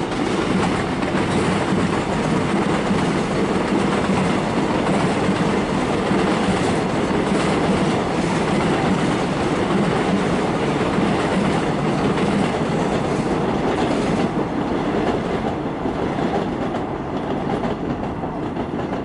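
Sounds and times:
train wheels on rail: 0:00.0 - 0:19.0.

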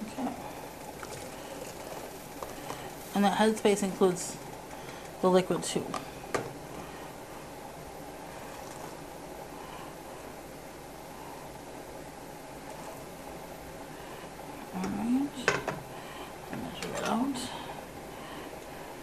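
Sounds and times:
kitchen background: 0:00.0 - 0:06.8, 0:14.6 - 0:17.8.

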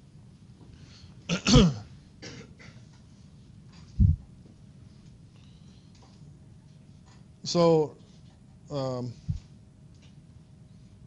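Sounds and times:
man coughing: 0:01.3 - 0:02.8.

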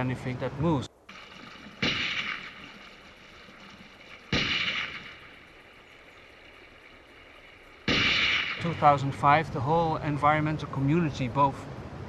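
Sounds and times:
gunshots echoing: 0:01.1 - 0:09.4.

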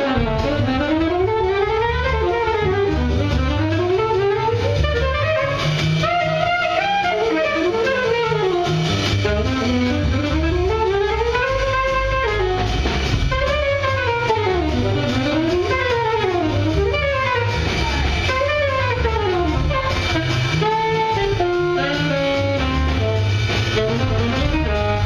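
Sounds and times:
drum kit: 0:00.0 - 0:25.0
plucked upright bass: 0:00.0 - 0:25.0
trumpet melody: 0:00.0 - 0:25.0.

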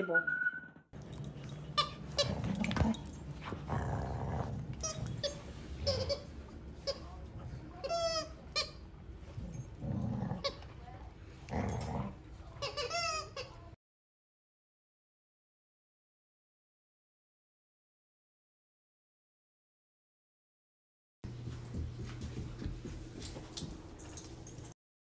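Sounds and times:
dogs grumbling: 0:01.9 - 0:06.3, 0:09.2 - 0:12.7.

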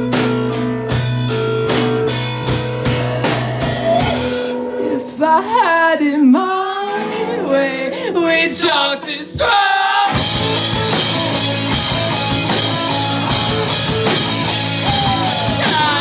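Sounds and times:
steady drum beat: 0:00.0 - 0:04.6, 0:10.1 - 0:16.0
live rock band playing: 0:00.0 - 0:05.3, 0:08.6 - 0:16.0
sliding bending guitar notes: 0:08.8 - 0:16.0.

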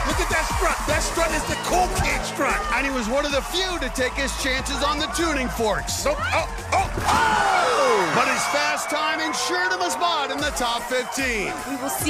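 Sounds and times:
background music: 0:00.0 - 0:12.0
voices cheering: 0:00.0 - 0:12.0.

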